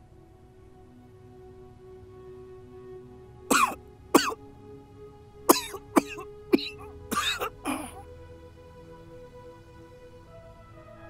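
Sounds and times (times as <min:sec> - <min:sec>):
soft background music: 0:00.0 - 0:11.0
person coughing: 0:03.5 - 0:04.4, 0:05.5 - 0:08.0.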